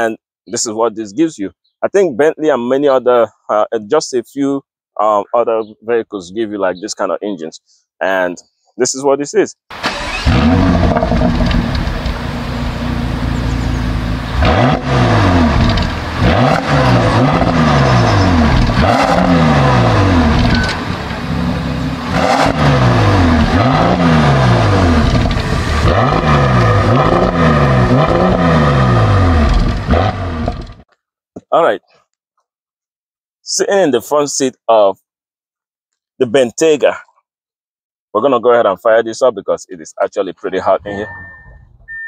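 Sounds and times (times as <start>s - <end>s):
car engine revving: 9.8s - 30.8s.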